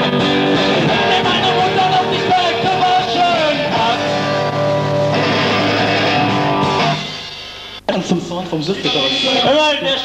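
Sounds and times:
electric guitar chord ringing: 0.0 - 7.4.

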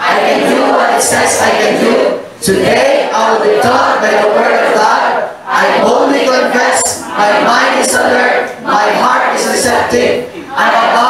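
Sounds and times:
congregation reciting in unison: 0.0 - 11.0.

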